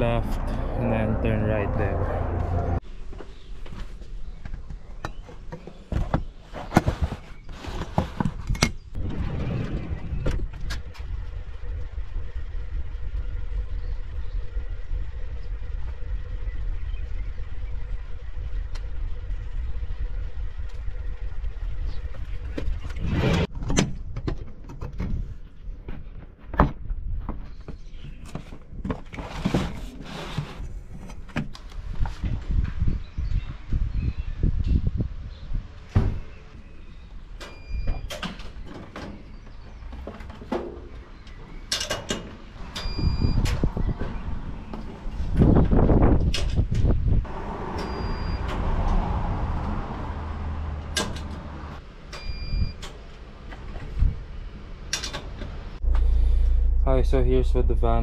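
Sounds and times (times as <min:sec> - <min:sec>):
low rumbling noise: 0:00.0 - 0:03.6, 0:09.0 - 0:23.5, 0:42.4 - 0:58.0
van sliding door: 0:41.8 - 0:54.1
short electronic beeps: 0:52.2 - 0:52.8.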